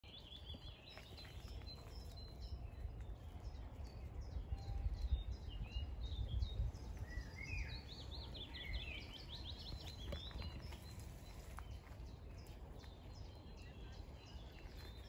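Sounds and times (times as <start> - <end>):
songbirds chirping: 0.0 - 15.0
wind rumble on microphone: 0.0 - 15.0.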